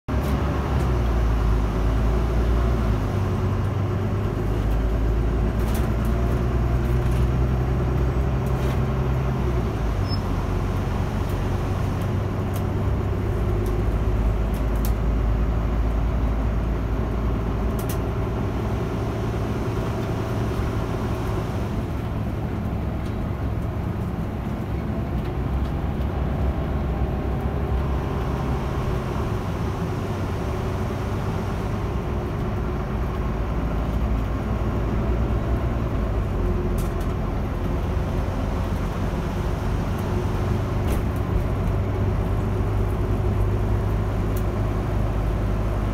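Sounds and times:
bus engine: 0:00.0 - 0:45.9
road noise inside cabin: 0:00.1 - 0:45.9.

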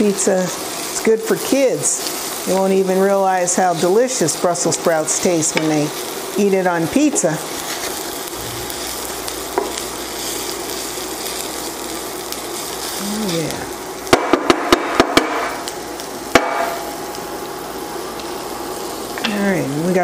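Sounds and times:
vegetables sizzling in oil: 0:00.0 - 0:20.0
spatula knocking pan: 0:14.1 - 0:15.5, 0:16.3 - 0:16.8.

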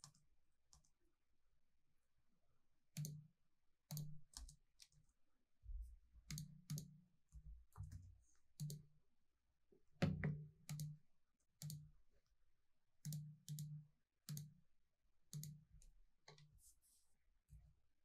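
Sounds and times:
mouse clicks: 0:13.0 - 0:13.7
keystrokes: 0:13.0 - 0:14.5.

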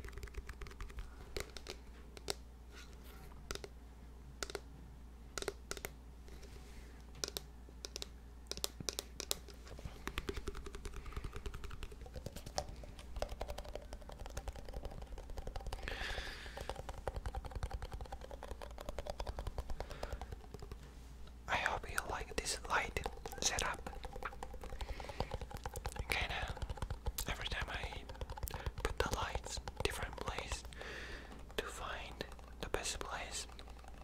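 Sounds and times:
fingertips tapping on container: 0:00.0 - 0:02.4, 0:03.5 - 0:03.7, 0:04.4 - 0:04.6, 0:05.4 - 0:06.0, 0:07.2 - 0:20.9, 0:21.5 - 0:34.0
scratchy rubbing: 0:16.5 - 0:20.8, 0:21.7 - 0:30.8.

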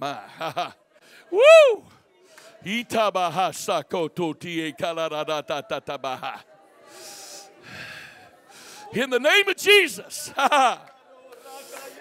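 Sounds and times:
man breathing heavily: 0:06.8 - 0:09.0.

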